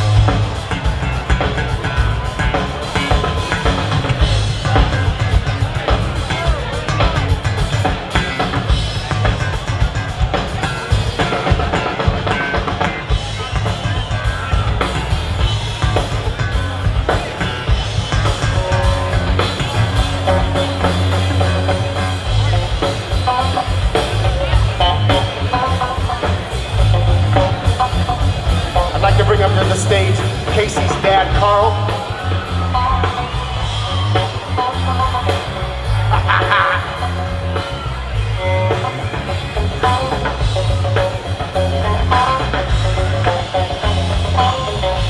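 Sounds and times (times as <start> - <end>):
drum kit: 0.0 - 45.0
electric bass playing: 0.0 - 45.0.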